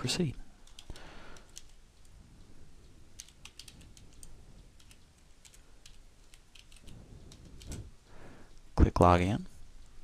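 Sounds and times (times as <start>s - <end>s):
keyboard typing: 0.6s - 2.1s, 2.8s - 7.9s.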